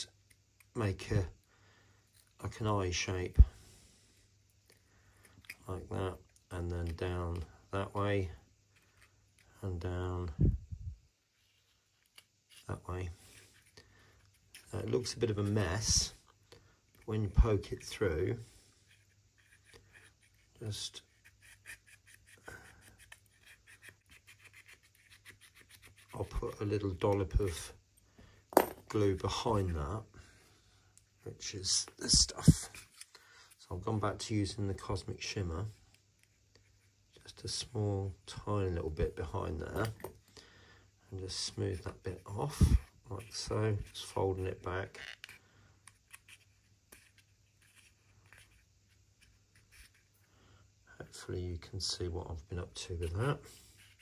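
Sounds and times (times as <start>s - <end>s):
scalpel blade scratching paper: 18.9s - 26.2s.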